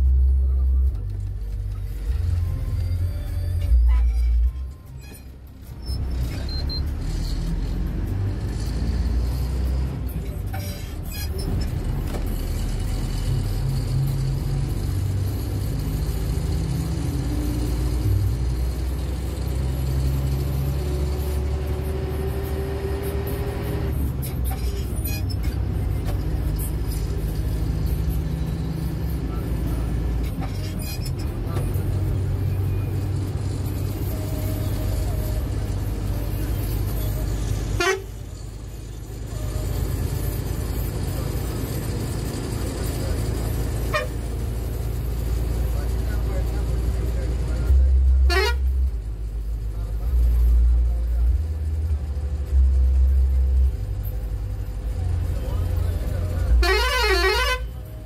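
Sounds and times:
bus engine running: 0.0 - 58.0
bus horn tooting: 36.7 - 38.4, 43.8 - 44.4, 48.1 - 48.9, 56.4 - 58.0.

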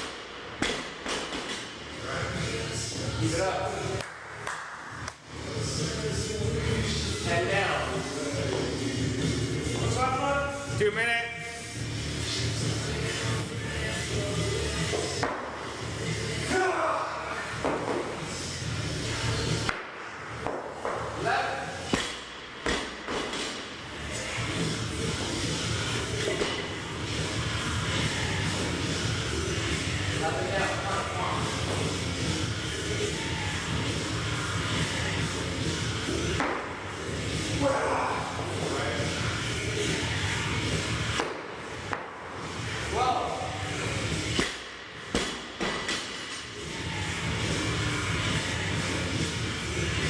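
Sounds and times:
background music: 0.0 - 50.0
voices in a large room: 1.9 - 20.4, 23.8 - 45.2.

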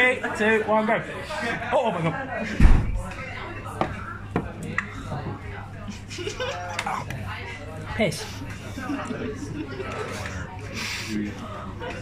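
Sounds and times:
pub chatter: 0.0 - 12.0.

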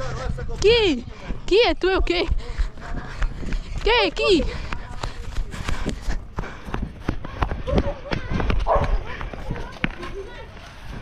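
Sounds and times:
running footsteps on paving stones: 0.0 - 11.0
wind rumbling on microphone: 4.5 - 11.0.

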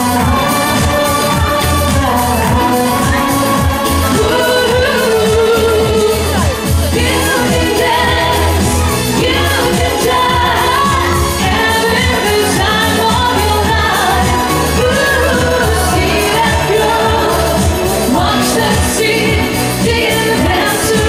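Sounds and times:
amplified backing music: 0.0 - 21.0
woman singing pop song: 0.0 - 21.0.

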